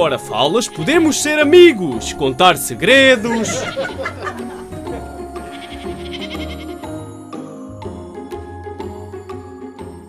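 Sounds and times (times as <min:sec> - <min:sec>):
background music: 0:00.0 - 0:10.0
sheep bleating: 0:05.3 - 0:06.8.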